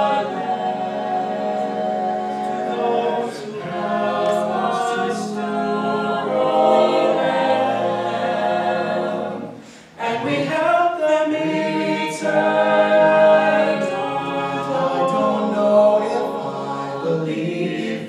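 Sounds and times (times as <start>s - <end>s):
a cappella backing chords: 0.0s - 18.0s
lead voice singing: 0.0s - 18.0s.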